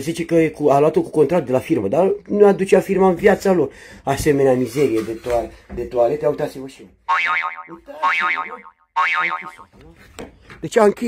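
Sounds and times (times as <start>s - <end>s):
wobbling springy comic tone: 7.1s - 9.8s.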